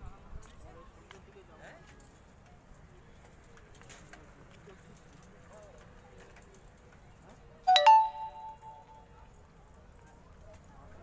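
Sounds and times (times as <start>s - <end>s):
faint outdoor background: 0.0s - 11.0s
metallic bell-like chime: 7.7s - 9.1s.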